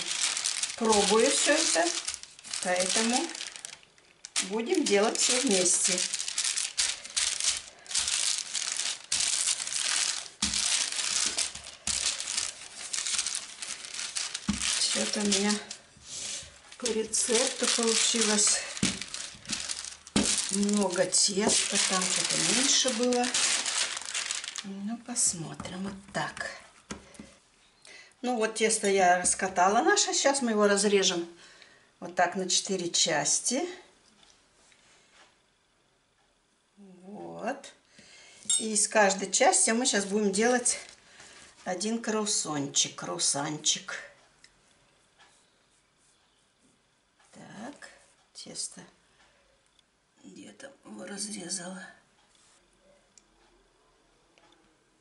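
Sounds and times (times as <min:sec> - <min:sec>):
parchment crinkling under rolling pin: 0:00.0 - 0:26.6, 0:39.1 - 0:42.4.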